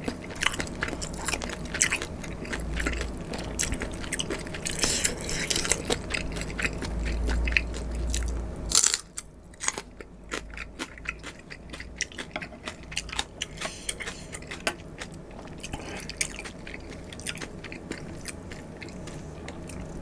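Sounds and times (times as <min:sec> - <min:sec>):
crunchy chewing of chili pepper: 0:00.0 - 0:20.0.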